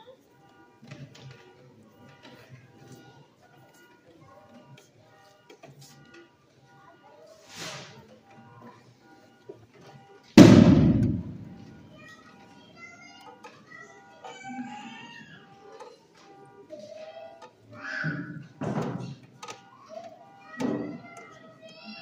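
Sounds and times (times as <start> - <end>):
loud echoing bang: 10.4 - 11.8.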